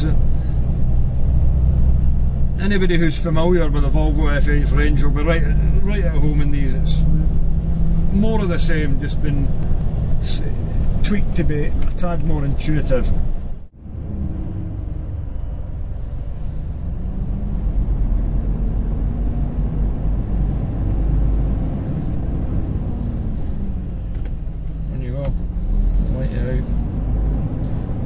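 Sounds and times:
truck diesel engine rumbling: 0.0s - 28.0s.

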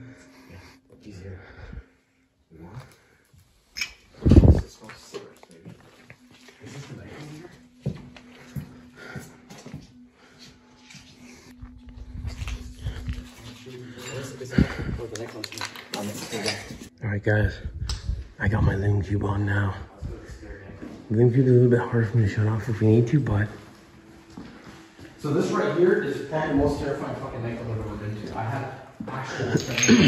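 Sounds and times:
movement noise: 3.7s - 29.3s.

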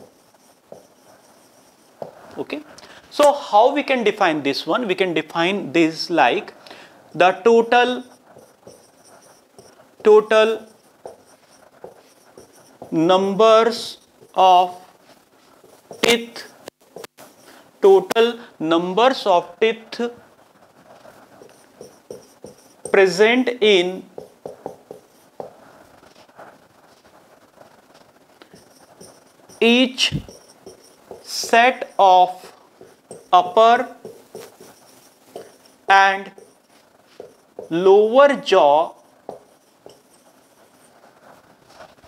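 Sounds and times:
marker pen writing on whiteboard: 0.0s - 3.4s, 7.2s - 18.3s, 19.9s - 42.0s.

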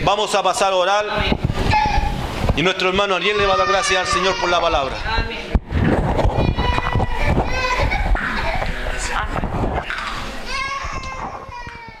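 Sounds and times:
several voices: 0.9s - 11.8s.

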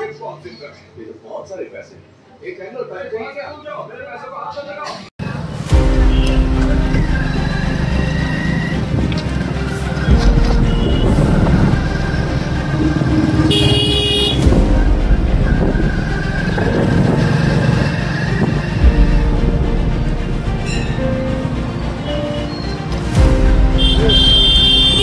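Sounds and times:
engine and road noise rumble: 5.2s - 25.0s
vehicle horn honking: 5.9s - 9.2s, 10.0s - 14.5s, 23.7s - 25.0s.

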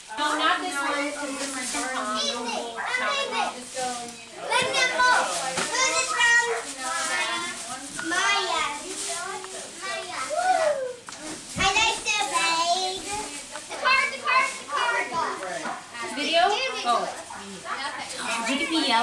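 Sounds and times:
children talking and shouting: 0.0s - 19.0s.

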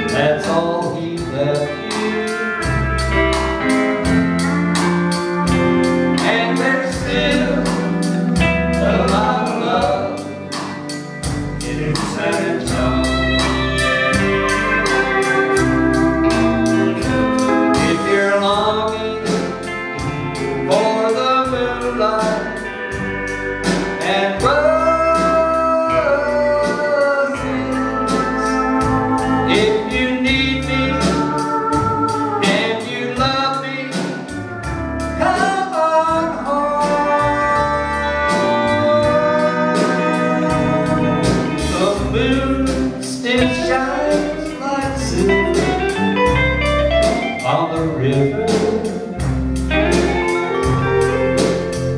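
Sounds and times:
steady cymbal beat: 0.0s - 25.8s, 27.4s - 51.9s
bass guitar: 0.0s - 51.9s
country band playing: 0.0s - 51.9s
electric guitar: 0.0s - 51.9s.

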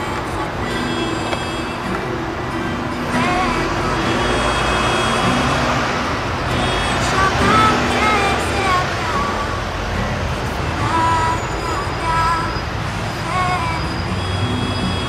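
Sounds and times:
acoustic guitar: 0.0s - 15.0s
road traffic rush: 0.0s - 15.0s
woman singing: 0.0s - 15.0s.

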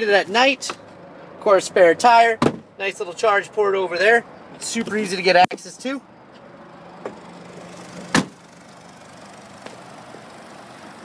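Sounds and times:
car liftgate shutting thump: 2.4s - 2.6s, 8.1s - 8.4s.

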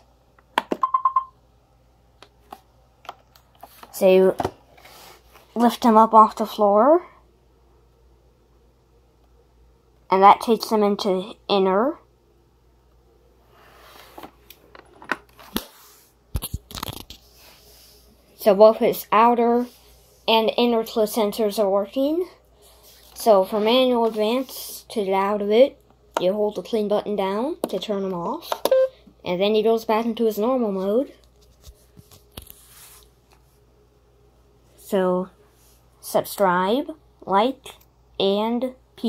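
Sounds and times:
robot vacuum short beeps: 28.7s - 28.9s.

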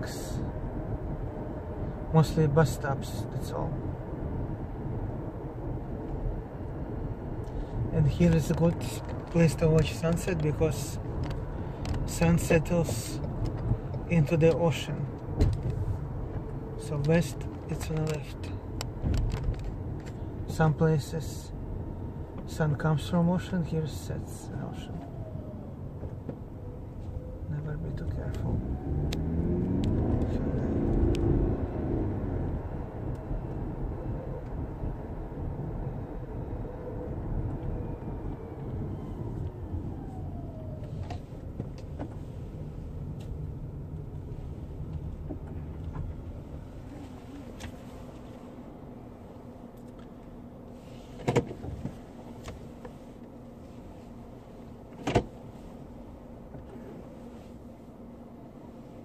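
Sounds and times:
car engine and road noise: 0.0s - 59.0s.

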